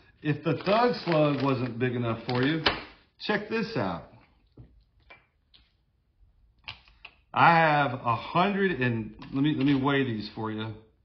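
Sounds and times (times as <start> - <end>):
handling of small objects: 0.2 - 3.0.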